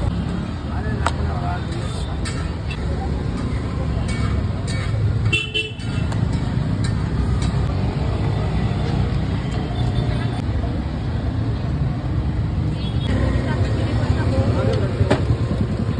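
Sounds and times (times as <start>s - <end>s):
street traffic rumble: 0.0s - 15.9s.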